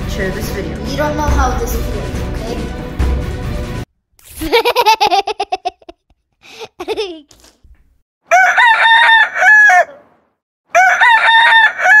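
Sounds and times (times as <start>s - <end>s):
rooster crowing: 8.3s - 10.1s, 10.7s - 12.0s.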